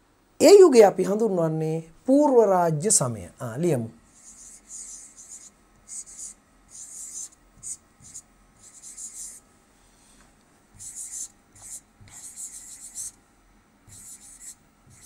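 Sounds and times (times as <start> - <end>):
pen scratching on a board: 4.2 - 9.4, 10.8 - 13.2, 13.9 - 15.0.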